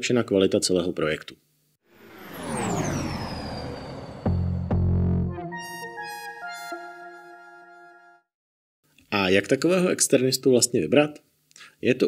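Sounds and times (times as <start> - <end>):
synthesized whoosh sweep: 1.9 - 5.6
high steady tone: 1.9 - 7.2.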